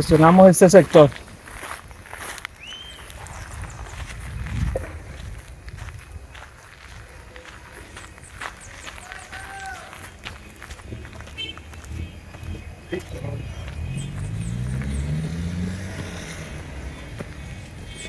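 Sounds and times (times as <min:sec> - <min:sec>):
footsteps on gravel and grass: 0:00.0 - 0:18.0.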